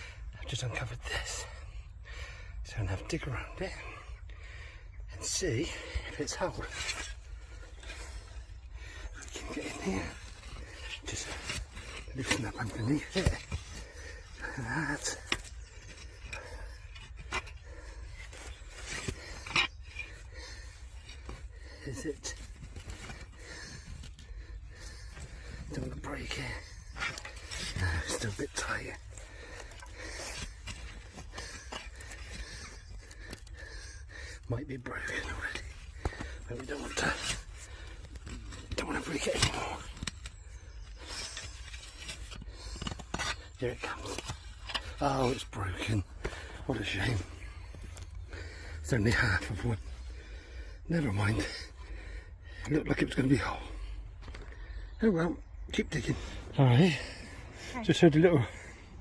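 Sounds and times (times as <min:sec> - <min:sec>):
hand fork scraping soil: 0:09.0 - 0:33.5, 0:34.4 - 0:47.2.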